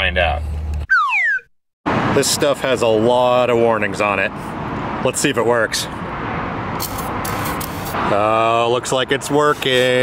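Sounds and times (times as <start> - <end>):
aerosol can spraying: 6.8 - 8.0.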